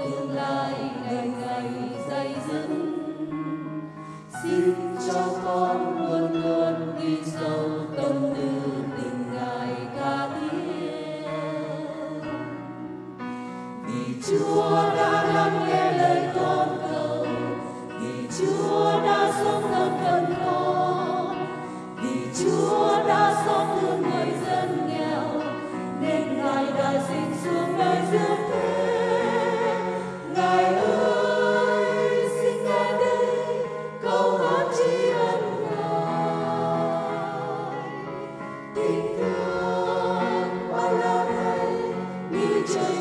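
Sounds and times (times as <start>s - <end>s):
church choir singing a hymn: 0.0s - 43.0s.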